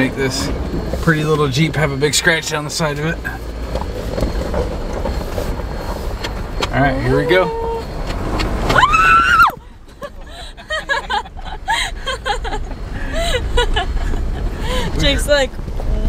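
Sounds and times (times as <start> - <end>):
people calling and chattering: 0.0 - 16.0
vehicle rumble: 0.0 - 16.0.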